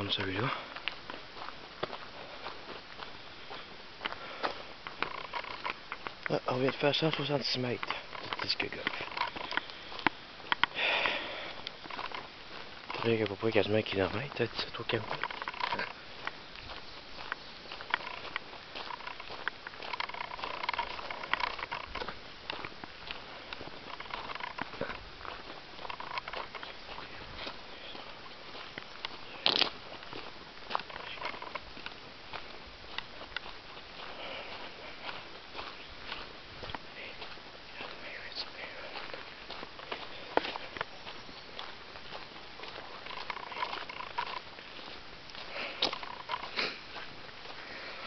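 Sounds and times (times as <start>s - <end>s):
faint steady hiss: 0.0s - 48.0s
footsteps on dirt trail: 0.0s - 48.0s
gravel crunching underfoot: 0.0s - 48.0s.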